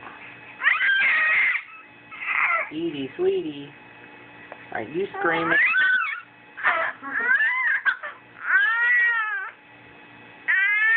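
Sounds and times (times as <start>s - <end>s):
baby squealing: 0.6s - 2.7s, 5.2s - 9.6s, 10.5s - 10.9s.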